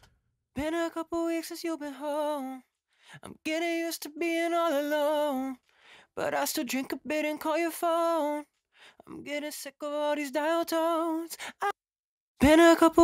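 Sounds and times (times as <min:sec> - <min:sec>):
person singing unaccompanied: 0:12.4 - 0:13.0.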